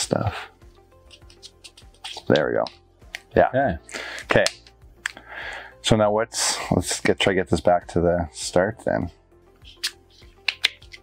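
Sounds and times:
wooden puzzle pieces clicking: 9.6 - 11.0.

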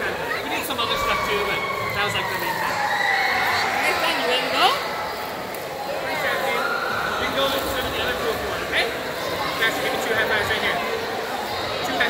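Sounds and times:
background voices and chatter: 0.0 - 12.0.

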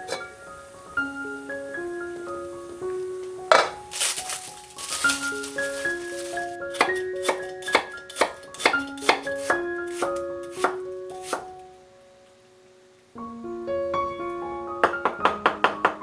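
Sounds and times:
keyboard music: 0.0 - 12.2
knife chopping on wooden board: 6.8 - 11.4.

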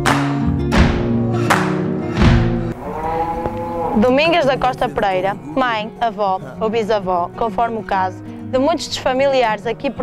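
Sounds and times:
long animal call: 2.8 - 5.7
flamenco guitar music: 4.0 - 10.0.

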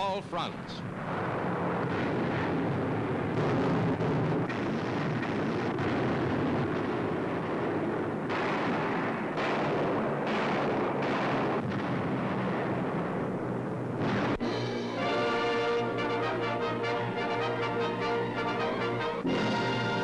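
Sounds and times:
bomb explosions rumbling: 0.4 - 20.0.

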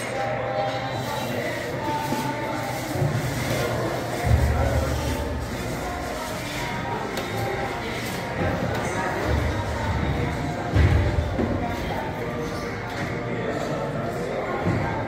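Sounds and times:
background music: 0.0 - 15.0
indistinct voices: 0.0 - 15.0.

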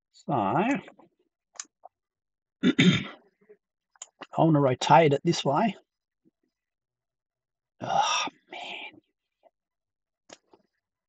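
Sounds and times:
man clearing his throat: 2.6 - 3.2.

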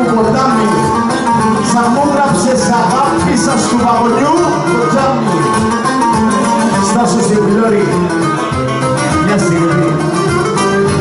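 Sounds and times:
bowed lyra lead melody: 0.0 - 11.0
lute strumming accompaniment: 0.0 - 11.0.

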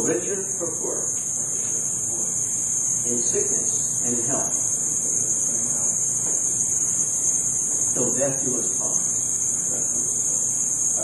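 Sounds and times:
high-pitched tape hiss: 0.0 - 11.0.

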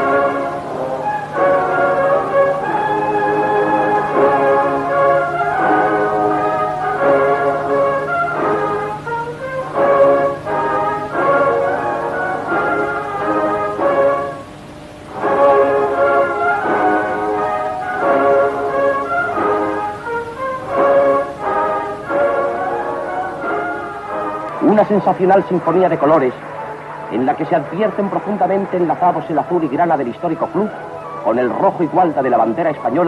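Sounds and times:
brass-led orchestral music: 0.0 - 33.0
faint steady hum: 0.0 - 33.0.

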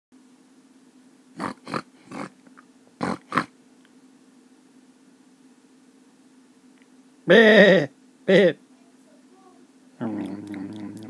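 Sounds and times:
steady low hum: 0.2 - 11.0
pig grunting: 1.4 - 2.4, 3.0 - 3.5, 10.0 - 11.0.

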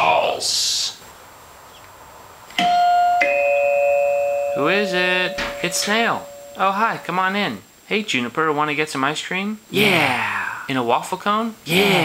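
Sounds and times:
faint background hiss: 0.0 - 12.0
doorbell chime: 2.6 - 7.1.

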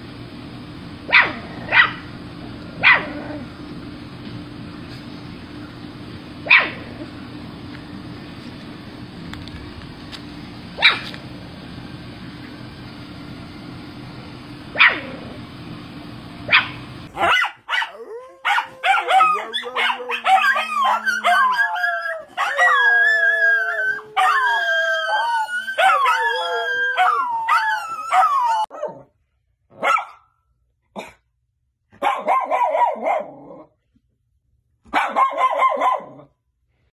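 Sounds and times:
steady background hum: 0.0 - 28.7
dog barking: 1.1 - 2.0, 2.8 - 3.2, 6.4 - 6.8, 10.8 - 11.1, 14.8 - 15.1, 16.5 - 22.8, 25.8 - 26.2, 29.7 - 30.3, 32.0 - 33.4, 34.9 - 36.3
dog's high wavering cries: 17.2 - 28.8.

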